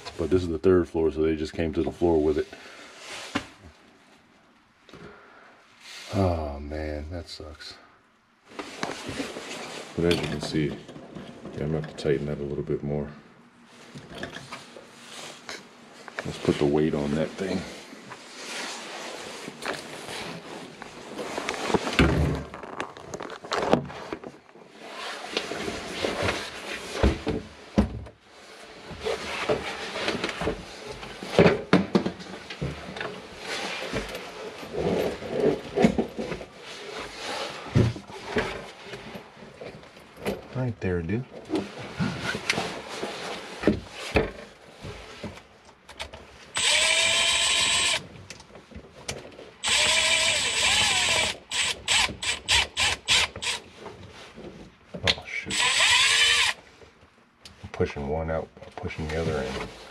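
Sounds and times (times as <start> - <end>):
cordless drill running: 46.6 - 48.0, 49.6 - 53.6, 55.5 - 56.6.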